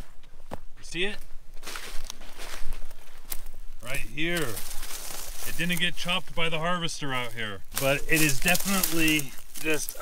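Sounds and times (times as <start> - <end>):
footsteps through dry straw: 0.8 - 10.0.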